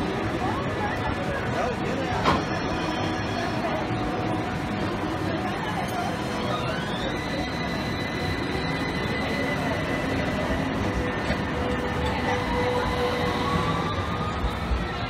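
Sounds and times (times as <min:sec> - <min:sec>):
street noise: 0:00.0 - 0:15.0
electric tram motor whine: 0:01.8 - 0:15.0.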